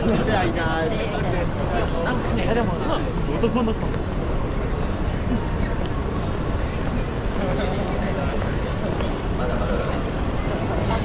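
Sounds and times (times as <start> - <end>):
low rumble of traffic: 0.0 - 11.0
passersby's voices: 0.0 - 11.0.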